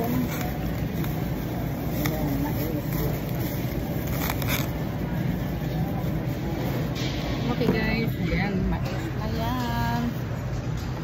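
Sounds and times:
plastic bag crinkling: 0.0s - 6.9s
faint voices: 0.0s - 10.4s
supermarket background hum: 0.0s - 11.0s.

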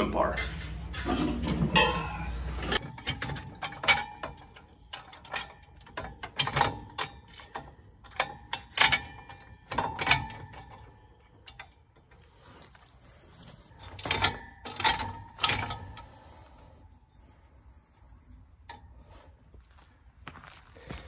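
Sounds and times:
metal clanks and knocks: 0.2s - 12.3s, 13.7s - 16.5s.

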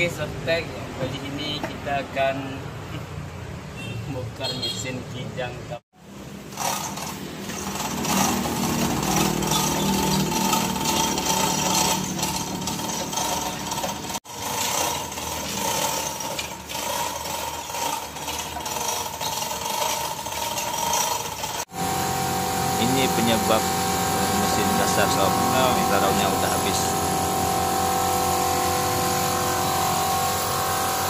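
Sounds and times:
chain hoist chain rattling: 6.5s - 21.7s, 22.8s - 31.0s.

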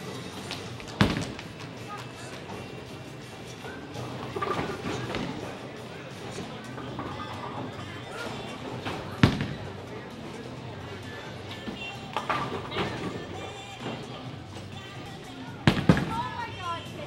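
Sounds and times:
background music: 0.0s - 17.0s
voices: 0.0s - 17.0s
bowling balls knocking pins: 0.4s - 10.5s, 15.5s - 16.3s.

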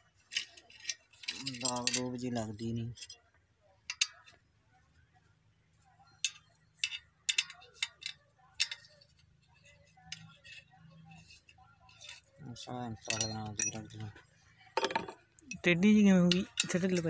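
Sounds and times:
spanner clicking on bolts: 0.3s - 3.2s, 3.8s - 4.4s, 6.2s - 12.3s, 13.0s - 14.0s, 14.8s - 17.0s.

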